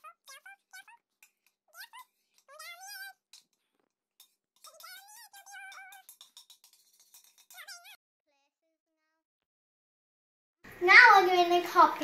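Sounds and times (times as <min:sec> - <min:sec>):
high squeaky voice sounds: 0:00.0 - 0:03.3, 0:04.6 - 0:06.2, 0:07.4 - 0:08.0.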